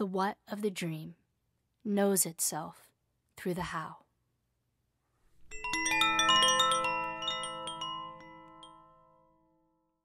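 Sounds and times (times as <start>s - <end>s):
chimes ringing in a cascade: 5.5s - 9.7s.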